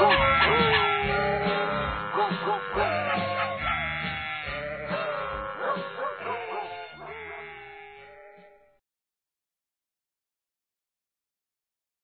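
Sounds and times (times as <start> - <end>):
singing in sheep-like bleats: 0.0 - 8.8.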